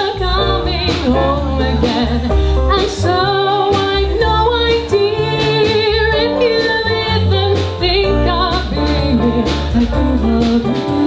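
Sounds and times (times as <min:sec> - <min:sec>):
jazz-funk band playing: 0:00.0 - 0:11.0
woman singing: 0:00.0 - 0:11.0.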